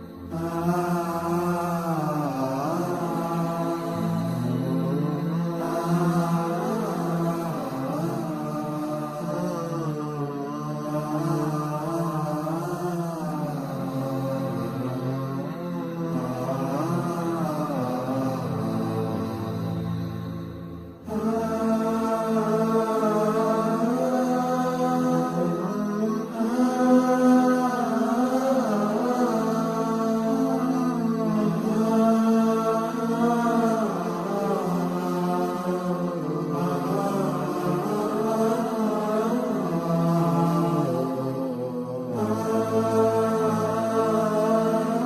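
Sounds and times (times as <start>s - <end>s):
melodic vocal chanting: 0.0s - 45.0s.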